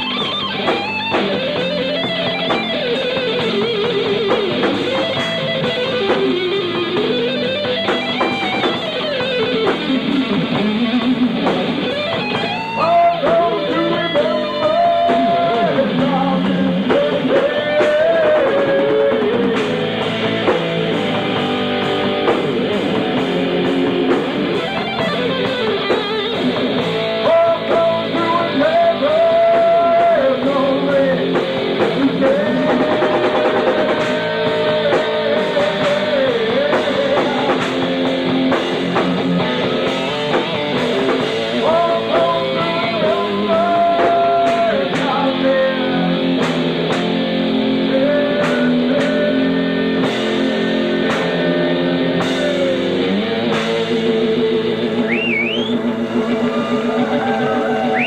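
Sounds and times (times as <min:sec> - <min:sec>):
drum kit: 0:00.0 - 0:58.0
electric guitar: 0:00.0 - 0:58.0.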